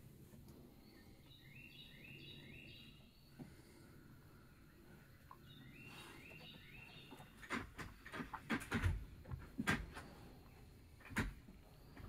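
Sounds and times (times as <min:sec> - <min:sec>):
low outdoor background rumble: 0:00.0 - 0:12.0
songbird song: 0:00.0 - 0:12.0.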